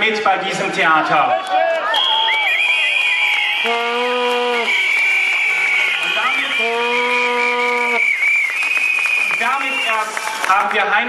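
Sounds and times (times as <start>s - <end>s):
crowd applause: 1.2s - 11.0s
shrill whistles: 1.8s - 10.4s
horn blast: 3.6s - 5.0s, 5.9s - 8.0s.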